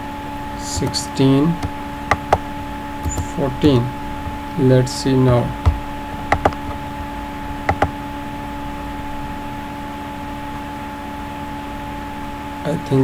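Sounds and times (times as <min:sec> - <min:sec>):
steady electrical hum: 0:00.0 - 0:13.0
computer mouse clicks: 0:03.0 - 0:03.9, 0:05.6 - 0:06.8, 0:07.7 - 0:07.9.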